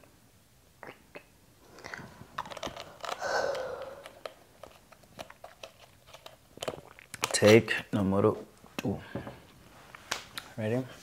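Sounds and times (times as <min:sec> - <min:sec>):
handling noise clicks and crackles: 0:02.4 - 0:07.6.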